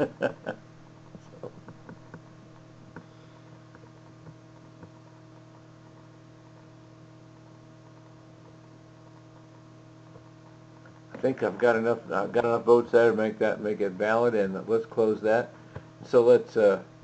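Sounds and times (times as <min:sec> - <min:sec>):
electrical hum: 0:00.0 - 0:17.0.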